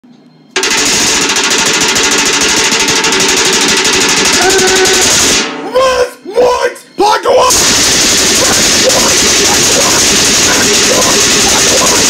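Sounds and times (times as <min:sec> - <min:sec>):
spatula rattling in metal pot: 0:00.6 - 0:05.4, 0:07.8 - 0:12.0
short pitched sounds: 0:00.6 - 0:06.1.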